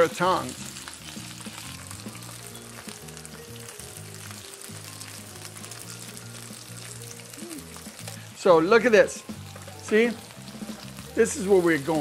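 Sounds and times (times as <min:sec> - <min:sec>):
okra sizzling in oil: 0:00.0 - 0:12.0
soft background music: 0:00.0 - 0:12.0.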